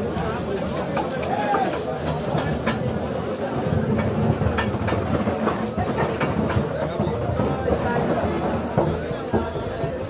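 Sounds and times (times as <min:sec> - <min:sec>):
clicks and clatter: 0:00.0 - 0:09.5.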